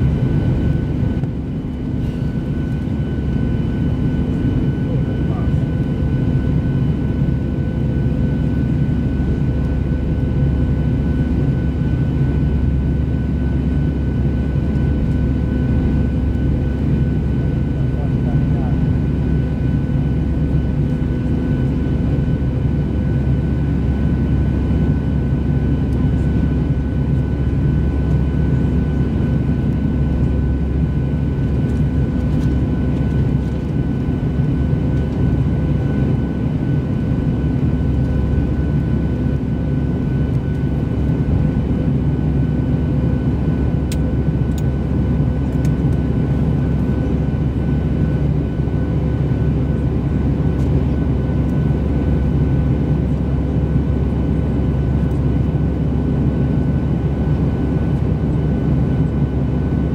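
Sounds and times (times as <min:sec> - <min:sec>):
jet engine rumble and airflow: 0:00.0 - 0:59.9.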